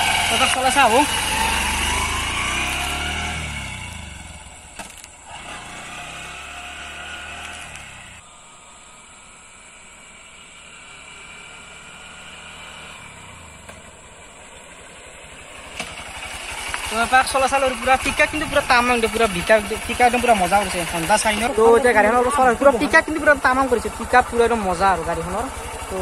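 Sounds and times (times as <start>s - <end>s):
motorcycle engine shifting gears: 0.0s - 8.2s, 10.0s - 26.0s.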